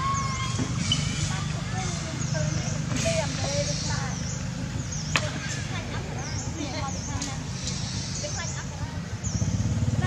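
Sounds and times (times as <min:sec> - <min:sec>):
high chirping calls: 0:00.0 - 0:10.0
motor engine rumbling: 0:00.0 - 0:10.0.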